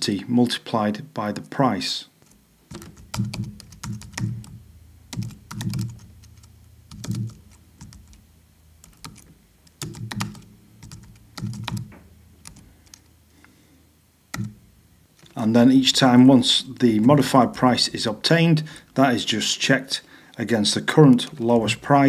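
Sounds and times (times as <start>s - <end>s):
typing on computer keyboard: 2.7s - 8.2s, 8.8s - 13.1s, 14.3s - 14.6s.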